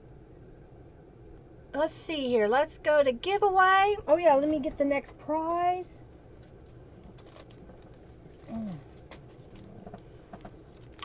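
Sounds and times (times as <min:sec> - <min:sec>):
woman humming low: 0:08.4 - 0:08.9.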